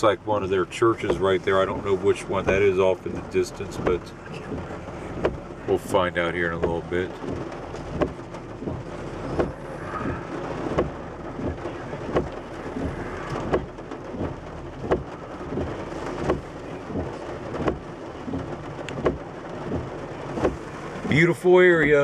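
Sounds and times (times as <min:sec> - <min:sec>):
rain on car roof: 0:00.0 - 0:22.0
windshield wipers sweeping: 0:00.0 - 0:22.0.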